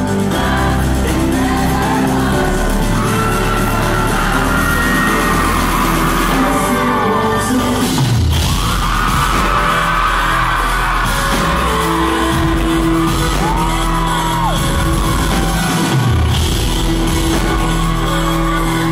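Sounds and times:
fans screaming: 0.0s - 18.9s
heavy bass beat: 0.0s - 18.9s
live pop music with singing: 0.0s - 18.9s.

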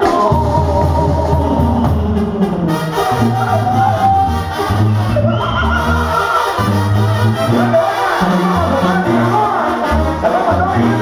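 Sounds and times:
brass band melody: 0.0s - 11.0s
steady bass line: 0.0s - 11.0s.

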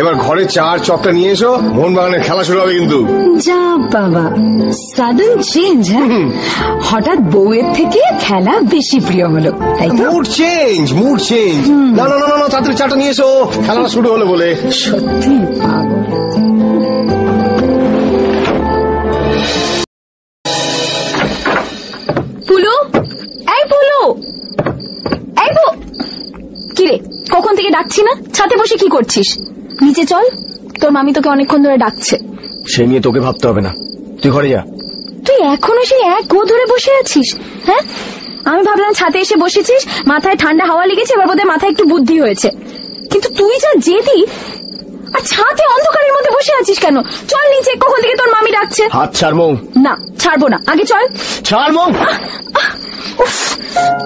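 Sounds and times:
crickets trilling: 0.0s - 17.9s, 21.1s - 54.0s.

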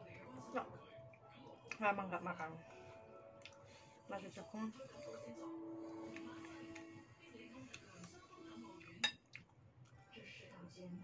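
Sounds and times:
metal spoon clinking against bowl: 9.0s - 9.2s.

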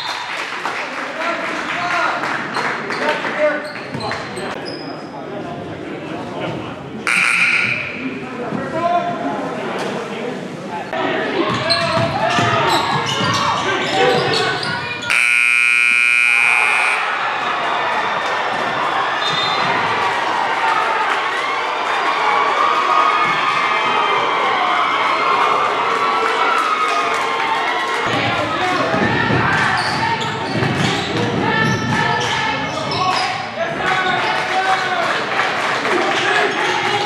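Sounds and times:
crowd chatter: 0.0s - 37.0s
scoreboard buzzer: 7.1s - 7.9s, 15.1s - 17.1s
basketballs bouncing on wooden floor: 11.4s - 14.8s, 28.1s - 33.0s.

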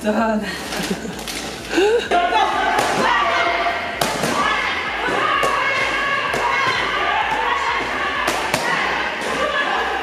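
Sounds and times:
person gasping: 1.7s - 2.2s.

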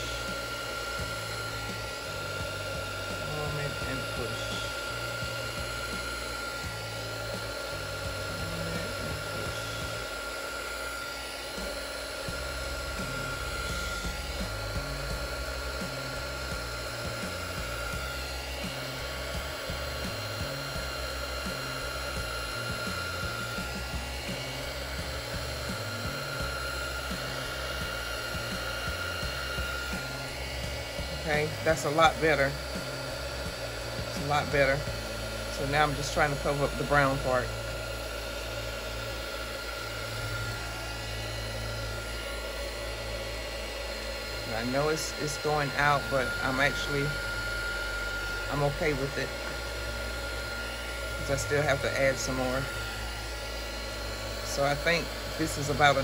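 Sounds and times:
heat gun blowing whir: 0.0s - 56.0s.

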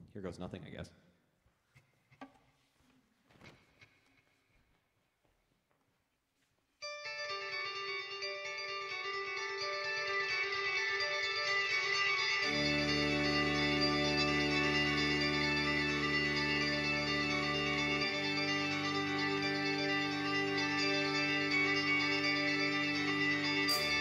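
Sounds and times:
electric guitar ringing: 6.8s - 24.0s.

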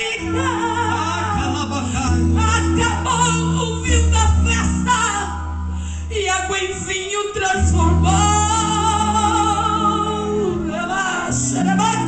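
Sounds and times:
bass and keyboard chords: 0.0s - 12.0s
woman singing with vibrato: 0.0s - 12.0s.

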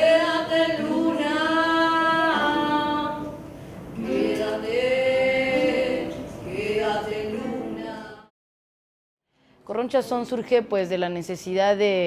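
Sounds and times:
women singing long notes: 0.0s - 8.3s.

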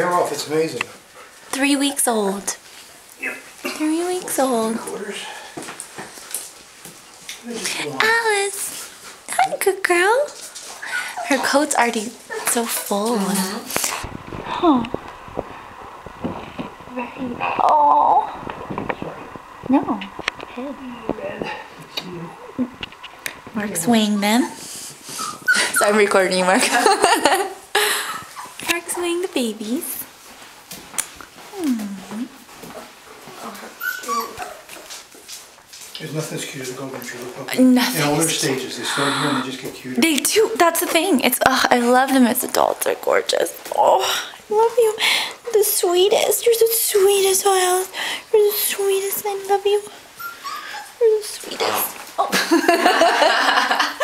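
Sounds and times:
puppies whimpering and squeaking: 10.6s - 13.0s, 23.8s - 26.2s, 28.0s - 28.6s, 33.3s - 35.1s, 49.9s - 51.9s.

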